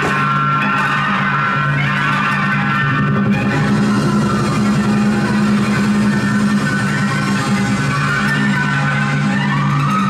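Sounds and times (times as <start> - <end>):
loud music: 0.0 - 10.0.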